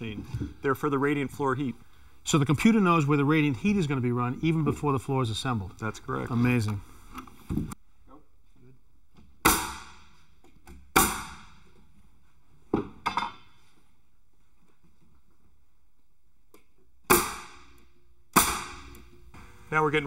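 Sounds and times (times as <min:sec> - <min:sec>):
pneumatic nailer shots: 0:09.4 - 0:10.2, 0:10.8 - 0:11.6, 0:17.1 - 0:19.1.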